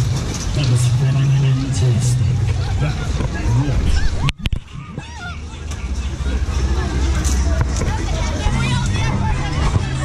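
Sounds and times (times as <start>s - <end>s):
mechanical rumble: 0.0s - 10.0s
voices of riders and onlookers: 0.0s - 10.0s.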